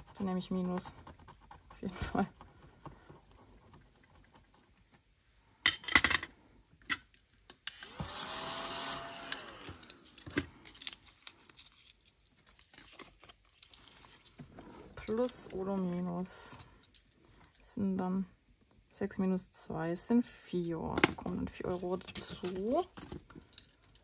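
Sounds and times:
small vacuum motor whine: 0:07.8 - 0:10.1.

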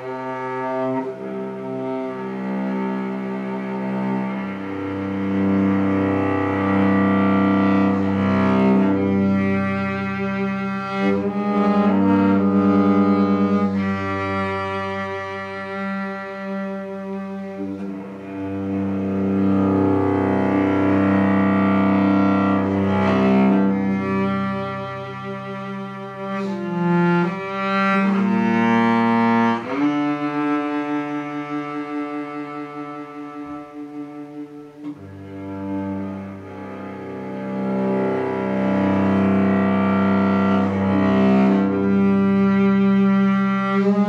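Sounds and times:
bowed cello: 0:00.0 - 0:44.0.

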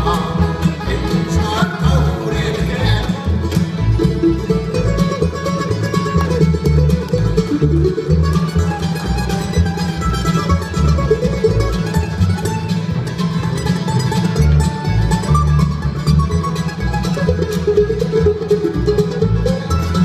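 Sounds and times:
bluegrass band playing: 0:00.0 - 0:20.0
upright bass notes: 0:00.0 - 0:20.0.

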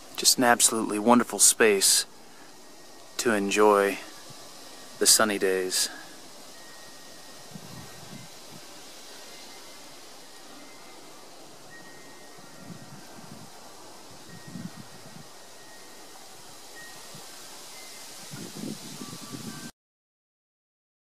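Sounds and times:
steady outdoor hiss: 0:00.0 - 0:19.7.

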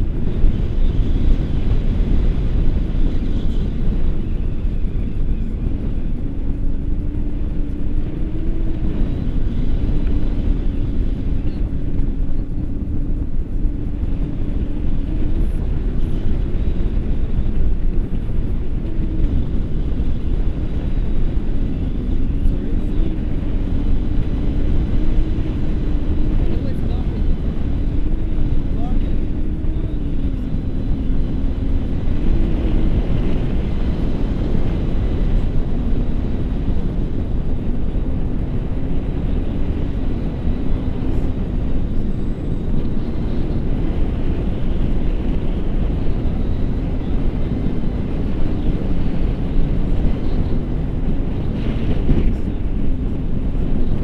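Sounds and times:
wind noise on microphone: 0:00.0 - 0:54.0.

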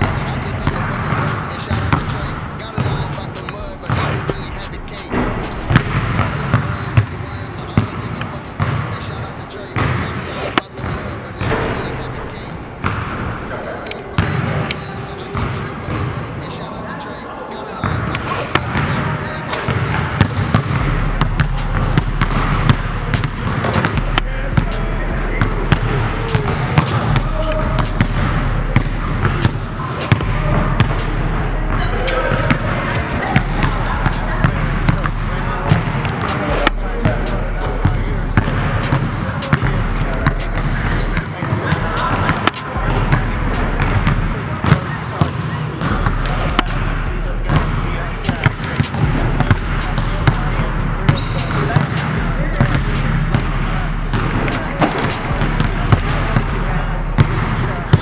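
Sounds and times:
basketballs bouncing on hardwood: 0:00.0 - 0:07.1, 0:07.8 - 0:08.8, 0:12.8 - 0:13.2, 0:19.7 - 0:31.1, 0:31.7 - 0:46.9, 0:47.5 - 0:47.7, 0:48.3 - 0:50.4, 0:51.1 - 0:58.0
sneakers squeaking on court: 0:00.0 - 0:39.6, 0:40.2 - 0:43.2, 0:43.8 - 0:47.7, 0:51.1 - 0:52.8, 0:54.1 - 0:58.0.

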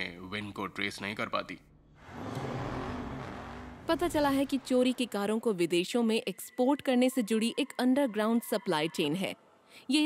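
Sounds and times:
car passing by: 0:02.0 - 0:05.1.

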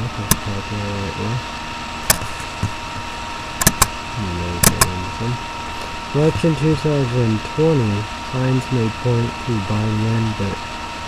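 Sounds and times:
man's voice: 0:00.0 - 0:01.4, 0:04.2 - 0:05.4, 0:06.2 - 0:10.6
sharp dry clicks: 0:03.6 - 0:04.0, 0:04.6 - 0:05.0.

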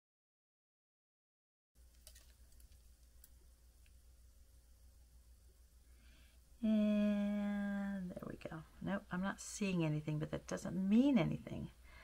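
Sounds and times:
steady low hum: 0:01.8 - 0:12.0.

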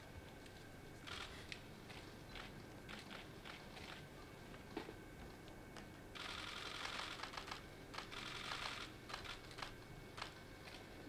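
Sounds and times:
camera shutters clicking: 0:01.1 - 0:01.6, 0:02.4 - 0:04.0, 0:06.2 - 0:10.8.

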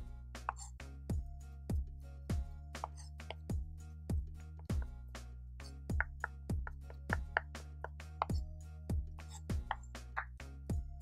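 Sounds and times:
background music: 0:00.0 - 0:11.0
knife chopping on wooden board: 0:02.4 - 0:03.5, 0:05.7 - 0:10.4.

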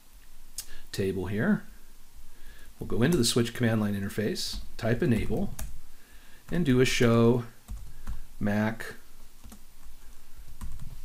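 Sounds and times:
keystrokes on computer keyboard: 0:04.5 - 0:05.8, 0:07.7 - 0:08.2, 0:09.4 - 0:09.9, 0:10.6 - 0:11.0.

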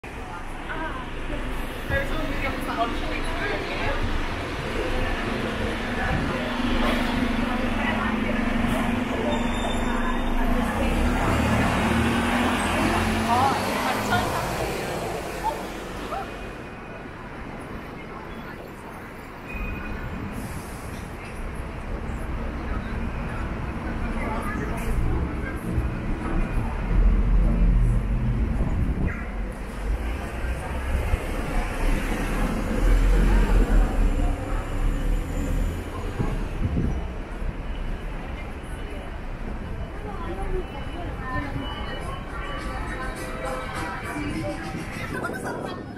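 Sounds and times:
bus engine humming: 0:00.0 - 0:19.4, 0:20.0 - 0:45.9
street traffic noise: 0:00.0 - 0:45.9.

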